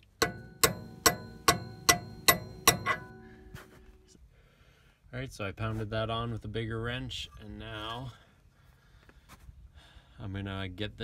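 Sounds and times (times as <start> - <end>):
hammer striking steel wrench: 0.0 - 3.6.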